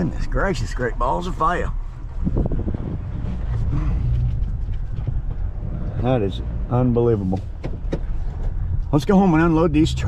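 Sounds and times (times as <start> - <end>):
pickup truck engine rumbling: 0.0 - 10.0.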